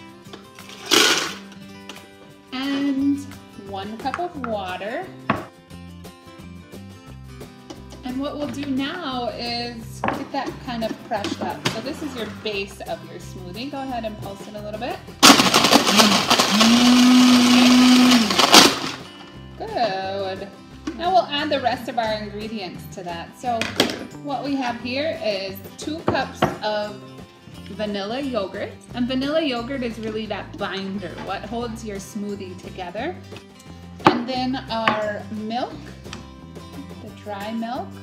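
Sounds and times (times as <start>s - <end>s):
soft background music: 0.0s - 38.0s
ice cubes clattering into blender: 0.6s - 1.5s, 15.2s - 19.2s.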